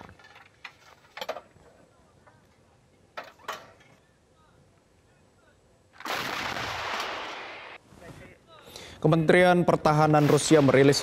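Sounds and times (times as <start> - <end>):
artillery gun firing blast: 6.0 - 7.8.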